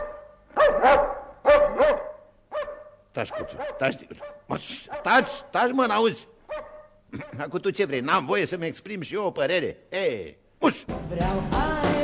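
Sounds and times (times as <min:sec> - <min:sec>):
dog barking sharply: 0:00.0 - 0:05.5, 0:06.5 - 0:07.4.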